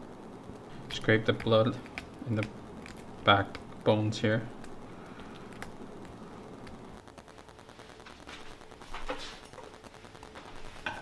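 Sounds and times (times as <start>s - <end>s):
wet clicks and scratches: 0.6s - 6.8s.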